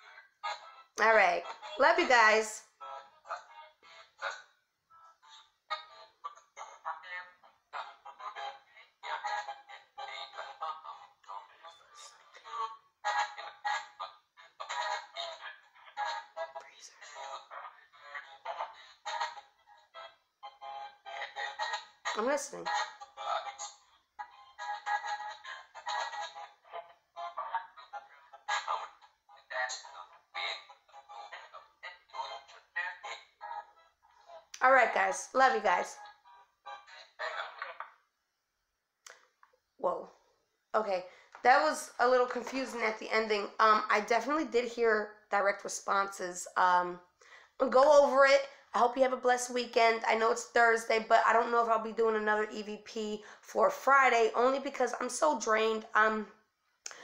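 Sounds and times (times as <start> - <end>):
choppy voice fragments from phone speaker: 0.0 - 38.0.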